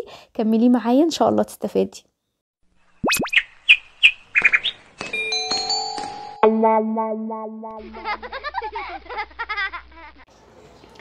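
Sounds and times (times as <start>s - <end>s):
cartoon bird chirps: 3.0s - 4.8s
chiming musical notes: 5.1s - 7.8s.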